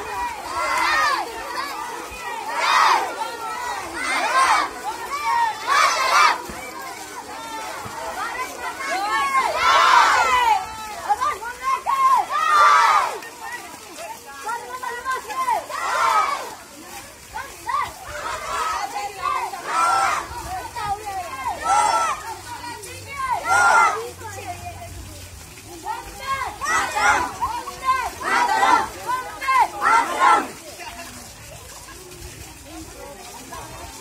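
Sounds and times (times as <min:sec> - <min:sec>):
children shouting in chorus: 0:00.0 - 0:13.6, 0:14.6 - 0:16.6, 0:17.4 - 0:24.2, 0:25.9 - 0:30.6.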